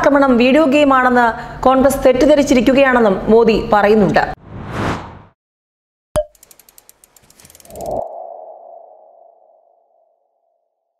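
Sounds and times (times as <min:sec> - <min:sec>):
whoosh: 0:04.4 - 0:05.4
sharp click: 0:06.2 - 0:08.0
quick run of ticks: 0:06.3 - 0:08.0.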